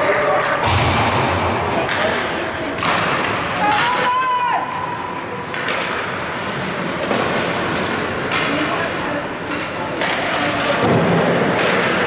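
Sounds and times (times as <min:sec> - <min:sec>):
hockey sticks and puck knocking: 0:01.8 - 0:04.2, 0:05.4 - 0:12.0.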